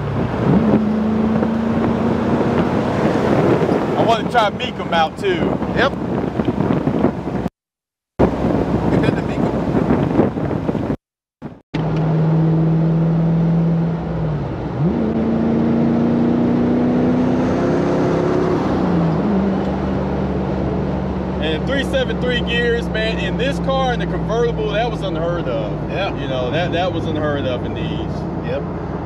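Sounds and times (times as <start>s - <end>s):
car engine at highway speed: 0.0s - 7.5s, 8.2s - 29.0s
road noise: 0.0s - 7.5s, 8.2s - 29.0s
wind noise: 0.0s - 7.5s, 8.2s - 11.0s.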